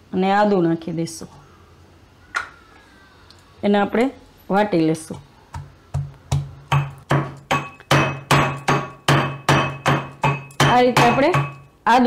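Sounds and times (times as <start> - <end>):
pestle pounding in metal mortar: 5.6 - 11.6.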